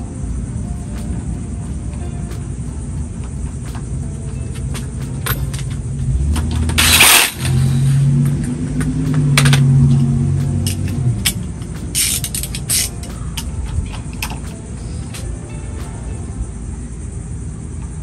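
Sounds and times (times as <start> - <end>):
vehicle engine rumble: 0.0 - 18.0
metallic clicks of hand tools: 5.2 - 15.3.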